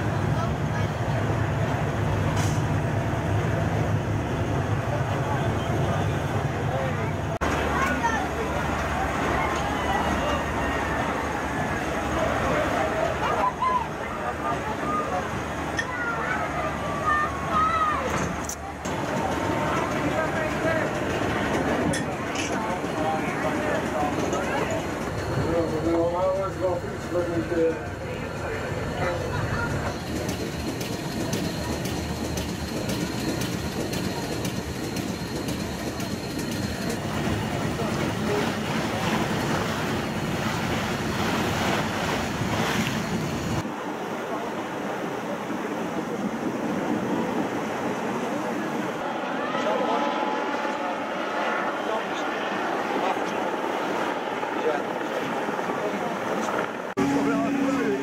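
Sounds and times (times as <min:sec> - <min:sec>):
water rushing past boat: 0:00.0 - 0:58.0
wind: 0:00.0 - 0:58.0.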